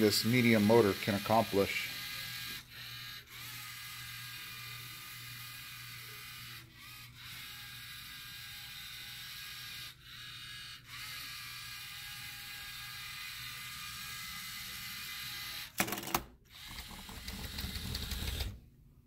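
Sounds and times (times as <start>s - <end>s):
robot motors whirring: 0.3s - 15.7s, 16.6s - 18.6s.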